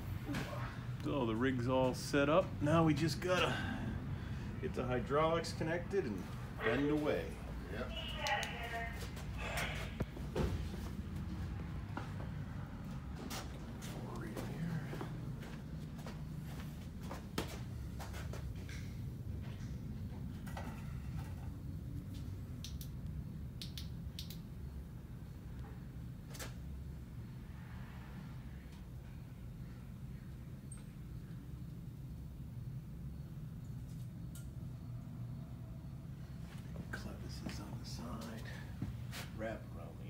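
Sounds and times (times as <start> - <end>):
low shop hum: 0.0 - 40.0.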